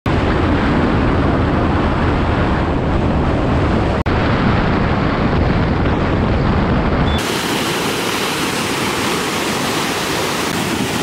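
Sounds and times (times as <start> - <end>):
vehicle road noise: 0.1 - 11.0
wind rush: 0.1 - 11.0.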